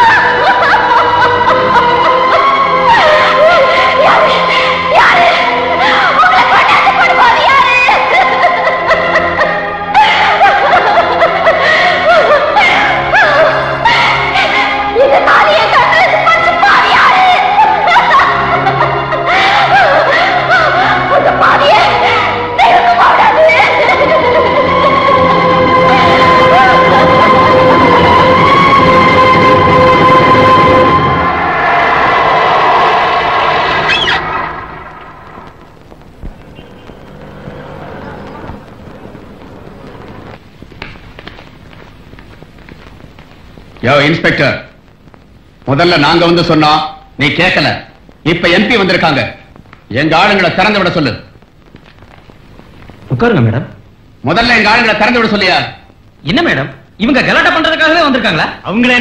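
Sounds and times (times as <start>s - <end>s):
woman wailing: 0.0s - 14.4s, 15.0s - 29.3s
film music with held tones: 0.0s - 59.0s.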